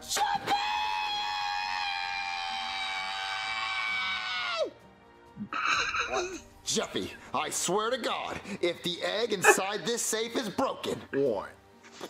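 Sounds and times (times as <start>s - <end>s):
man screaming in cartoon voice: 0.0s - 4.8s.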